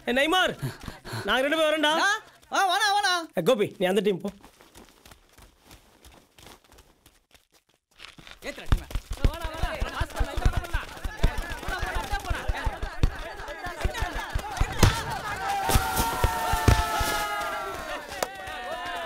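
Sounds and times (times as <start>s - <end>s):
running feet and kicks on dirt: 4.2s - 19.0s
players shouting: 9.3s - 19.0s.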